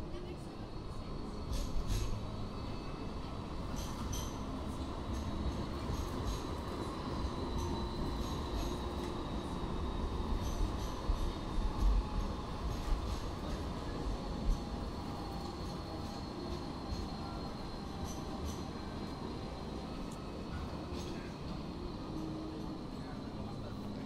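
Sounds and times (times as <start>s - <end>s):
tram running on street track: 0.0s - 24.0s.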